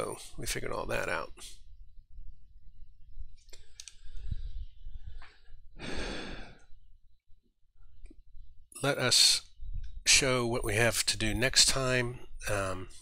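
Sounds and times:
soft clicks: 3.4 - 4.0
man sighing: 5.8 - 6.6.

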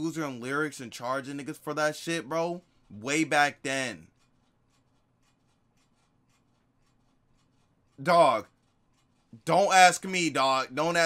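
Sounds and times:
faint ticks: 3.9 - 9.5.

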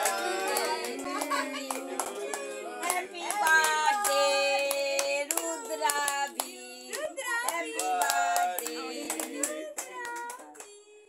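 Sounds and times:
people singing drawn-out notes: 0.0 - 6.9
people clapping rhythmically: 0.0 - 11.0.

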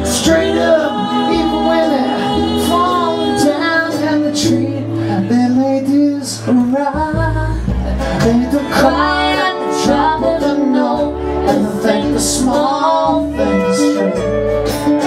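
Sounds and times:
person singing: 0.0 - 15.0
upright double bass: 0.0 - 15.0.

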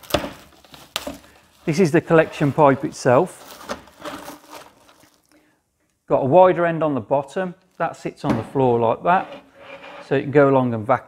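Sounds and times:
plastic wrap crinkling: 0.0 - 5.4.

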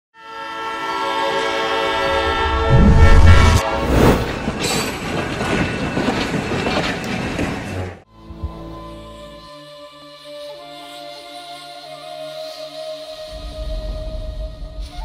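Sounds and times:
train horn blast: 0.2 - 4.6
train passing rush: 0.6 - 8.0
heavy low rumble: 2.4 - 4.6.

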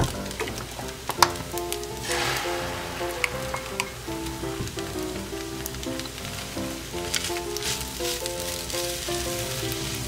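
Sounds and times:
rice sizzling in frying pan: 0.2 - 10.0
spatula stirring in pan: 6.4 - 10.0.

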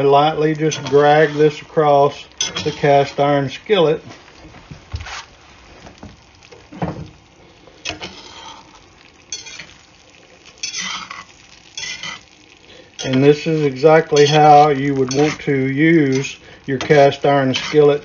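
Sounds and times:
eggs sizzling faintly: 0.0 - 18.0
spatula scraping a skillet: 0.6 - 1.7, 2.4 - 3.1, 7.8 - 9.8, 10.5 - 18.0.

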